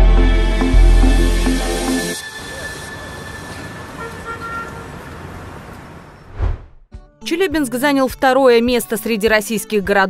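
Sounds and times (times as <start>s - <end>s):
street traffic noise: 1.8s - 6.6s
car horn toot: 3.6s - 5.1s
low thump: 6.3s - 6.8s.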